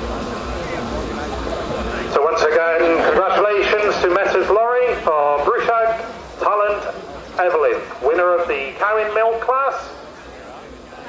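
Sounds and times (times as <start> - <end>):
low outdoor rumble: 0.0 - 11.0
man announcing over loudspeaker: 0.5 - 10.7.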